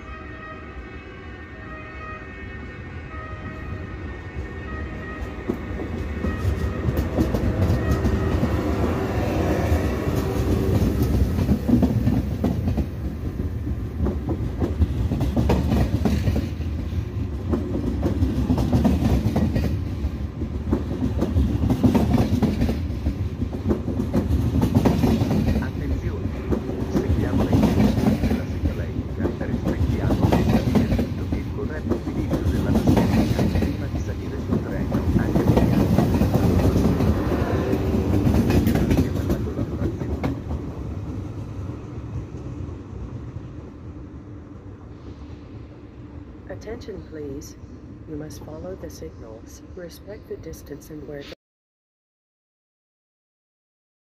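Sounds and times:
steady tones from train power car: 0.0s - 51.3s
train wheels clacking over rail joints: 9.7s - 40.8s.

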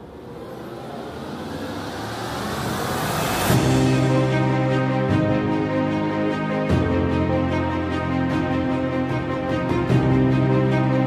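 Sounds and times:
whoosh noise swell: 0.0s - 5.2s
intro music hit: 0.3s - 10.5s.

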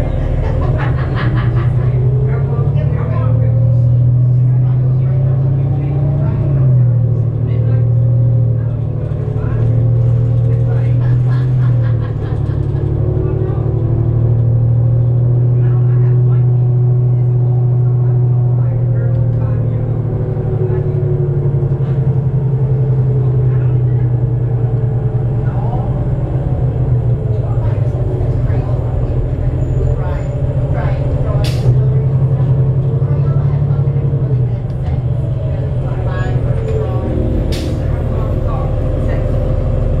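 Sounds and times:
bus diesel engine rumble: 0.0s - 40.0s.

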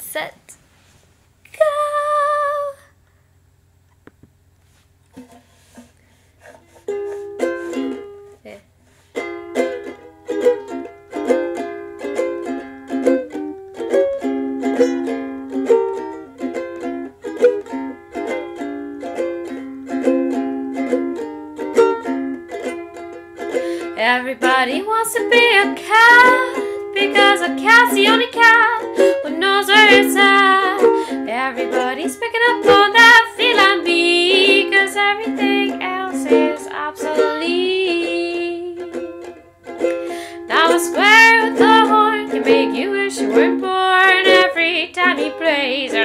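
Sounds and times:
ukulele strumming chords: 5.1s - 46.0s.

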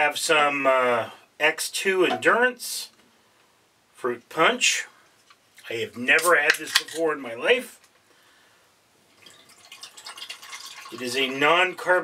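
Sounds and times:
drink pouring onto ice cubes: 9.1s - 11.3s.

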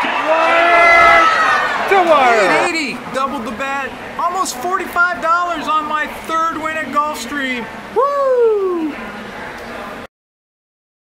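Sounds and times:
crowd noise: 0.0s - 10.1s.

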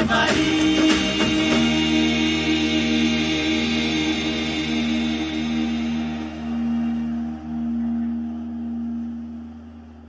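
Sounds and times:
low sustained music drone: 0.3s - 10.0s.

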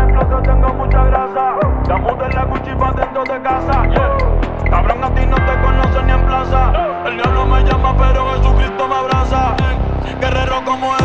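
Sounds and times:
deep falling bass hits: 0.0s - 10.6s
steady synth notes: 0.0s - 11.0s.

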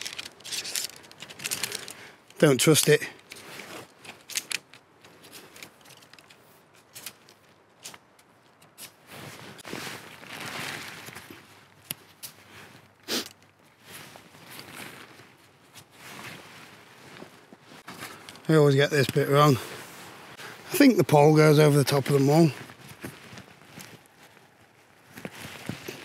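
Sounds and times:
tent poles and clips clicking: 0.0s - 19.2s, 22.6s - 26.0s
tent fabric rustling: 0.0s - 26.0s.

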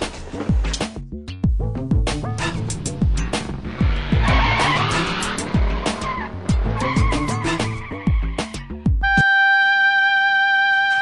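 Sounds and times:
background music with drum hits: 0.0s - 9.3s
tyres skidding on dirt: 2.1s - 8.6s
car pulling away hard: 2.2s - 8.4s.

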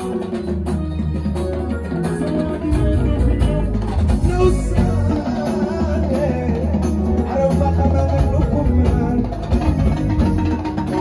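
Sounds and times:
bass: 0.0s - 11.0s
drums: 0.0s - 11.0s
plucked guitar line: 0.0s - 11.0s.

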